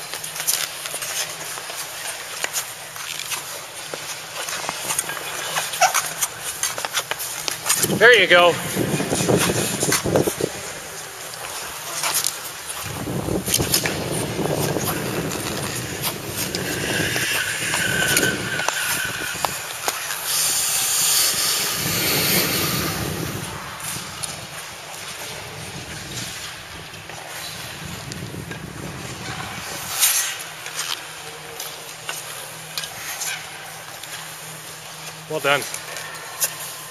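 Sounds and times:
skate blades scraping on ice: 0.0 - 36.9
wind rumbling on microphone: 7.8 - 10.9, 12.8 - 19.8, 20.4 - 29.8.

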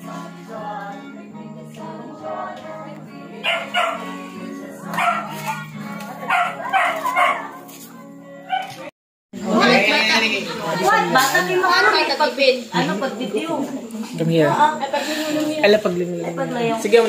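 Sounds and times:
background music: 0.0 - 10.0
dog barking and yipping: 3.4 - 4.2, 4.8 - 8.9
people talking loudly: 9.4 - 17.0.

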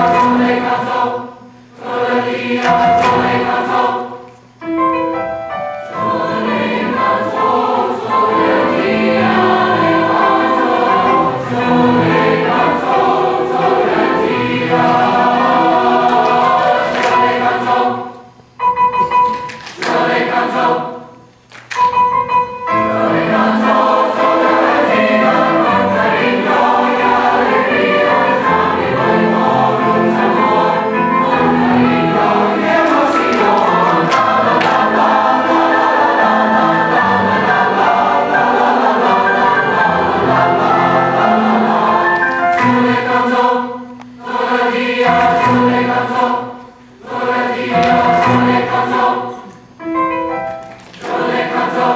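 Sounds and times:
youth choir singing: 0.0 - 4.3, 5.9 - 18.4, 19.8 - 21.3, 22.6 - 49.8, 51.0 - 51.9.

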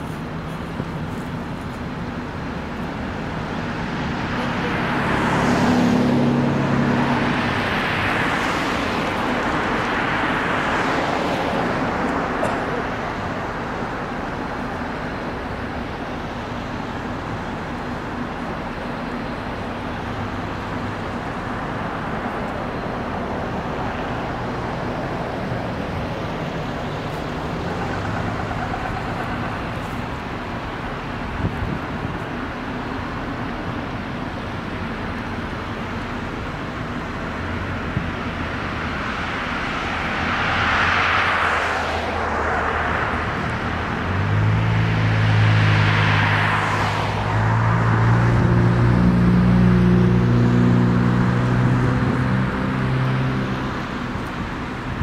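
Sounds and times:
cars driving past: 0.0 - 55.0
low steady engine hum: 0.0 - 55.0.

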